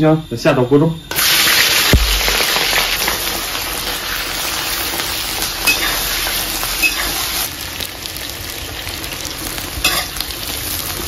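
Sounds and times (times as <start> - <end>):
vegetables sizzling in hot oil: 1.1 - 11.0.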